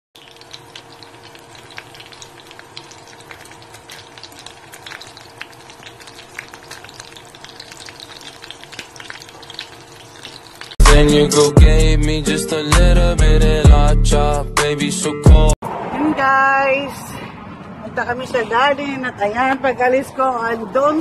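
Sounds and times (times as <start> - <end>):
food sizzling in oil: 0.2 - 10.8.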